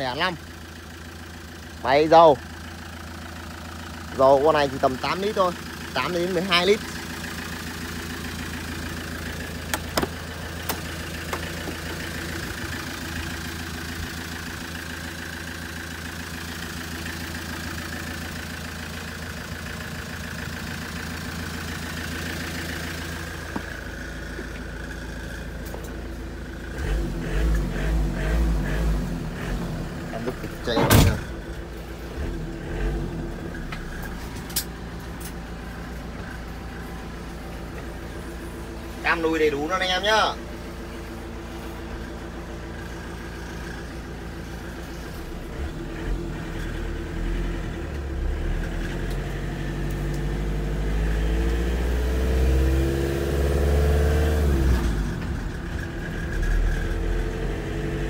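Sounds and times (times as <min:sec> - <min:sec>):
diesel engine idling: 0:00.0 - 0:58.0.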